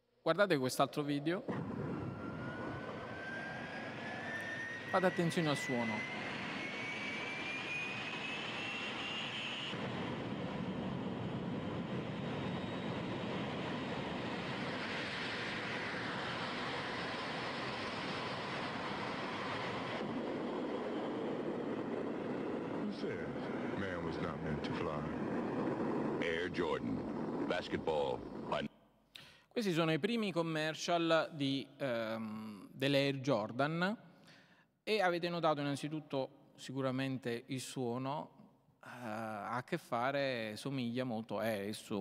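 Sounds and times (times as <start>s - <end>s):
jet engine whine and running: 1.0s - 28.7s.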